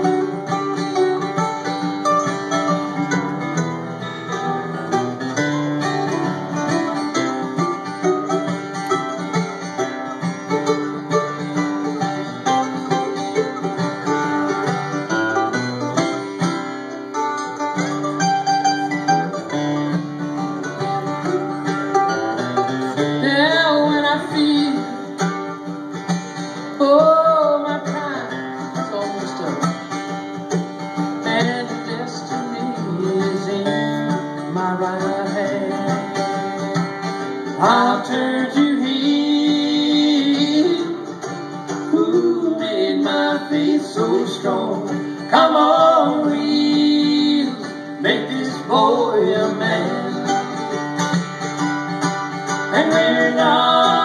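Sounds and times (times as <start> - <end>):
acoustic guitar strumming: 0.0 - 54.0
mandolin plucking: 0.0 - 54.0.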